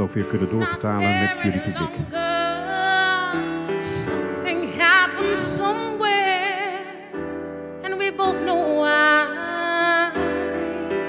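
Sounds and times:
woman singing into microphone: 0.5s - 7.2s, 7.8s - 11.0s.

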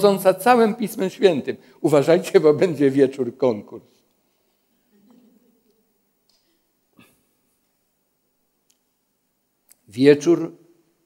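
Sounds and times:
man speaking: 0.0s - 4.0s, 9.8s - 10.7s.

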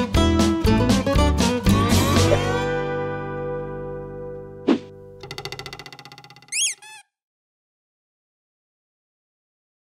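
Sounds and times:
fast cartoon rattle: 5.2s - 7.0s
high squeaky gliding chirp: 6.5s - 7.1s.

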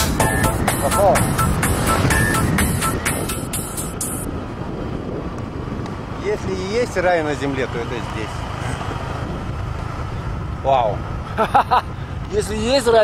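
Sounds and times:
electronic dance music: 0.0s - 4.2s
wind rush: 0.0s - 13.0s.

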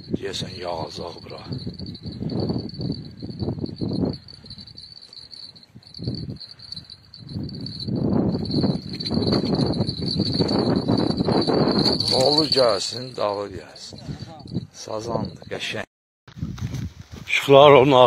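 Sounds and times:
phone microphone handling rumble: 7.3s - 12.6s.

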